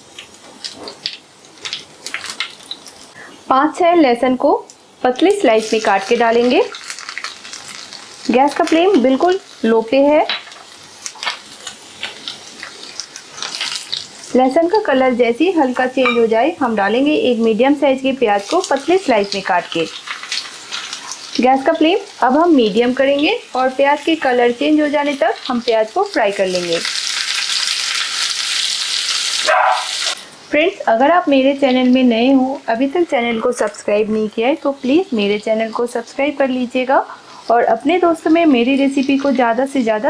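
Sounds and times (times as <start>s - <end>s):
garlic sizzling in hot oil: 0.0s - 40.0s
woman speaking: 3.5s - 6.7s, 8.3s - 10.3s, 14.3s - 19.9s, 21.4s - 26.8s, 30.5s - 40.0s.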